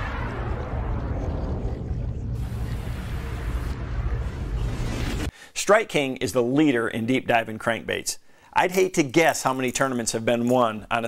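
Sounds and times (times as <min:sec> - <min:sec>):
deep bass rumble: 0:00.0 - 0:05.3.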